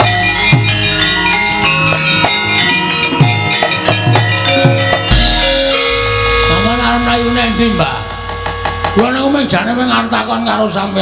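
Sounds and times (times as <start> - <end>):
drum strokes: 0.0 - 10.3
metallophones and bells ringing: 0.0 - 11.0.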